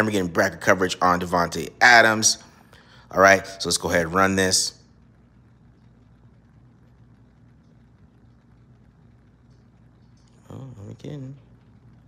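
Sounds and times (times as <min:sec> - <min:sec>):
faint low hum: 0:00.0 - 0:12.0
light hiss: 0:00.0 - 0:12.0.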